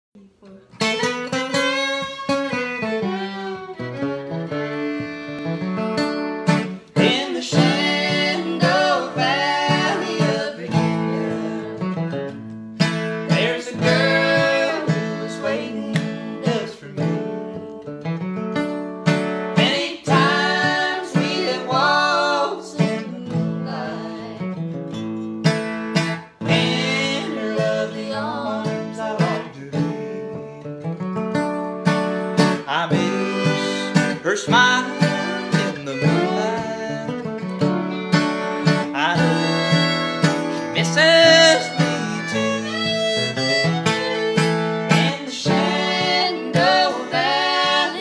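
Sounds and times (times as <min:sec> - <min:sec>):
acoustic guitar strumming chords: 0:00.7 - 0:48.0
bowed fiddle melody: 0:00.7 - 0:48.0.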